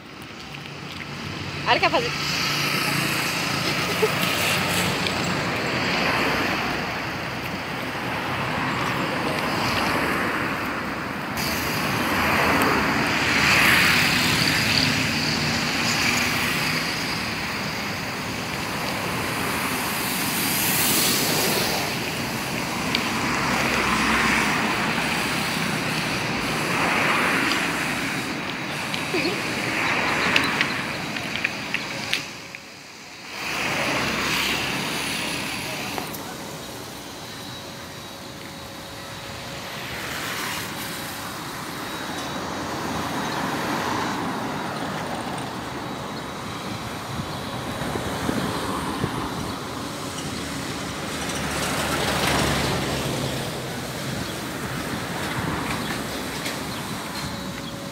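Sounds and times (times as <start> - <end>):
cars passing: 0.0 - 57.9.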